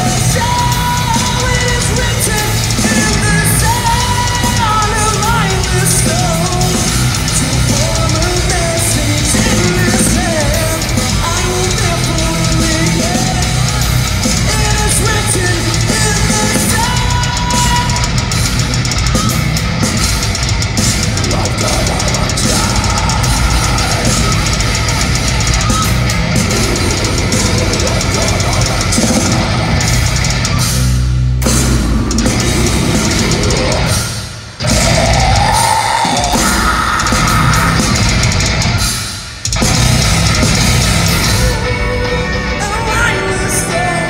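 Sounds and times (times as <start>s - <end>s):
vocalist on microphone: 0.0s - 18.5s, 20.8s - 30.6s, 31.5s - 38.8s, 41.2s - 44.0s
distorted electric guitars: 0.0s - 44.0s
drum kit: 0.0s - 44.0s.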